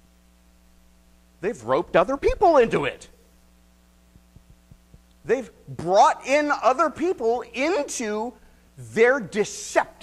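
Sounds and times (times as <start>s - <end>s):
electrical mains hum: 0.0s - 10.0s
soft faint taps: 4.1s - 5.2s.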